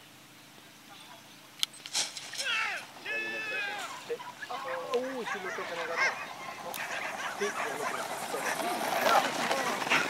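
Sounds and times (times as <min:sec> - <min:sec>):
spectators shouting and cheering: 0:02.4 - 0:10.0.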